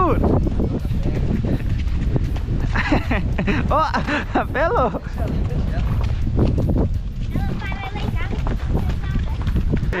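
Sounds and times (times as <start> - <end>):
horse hoofbeats on dirt: 0.0 - 10.0
wind rumble on microphone: 0.0 - 10.0.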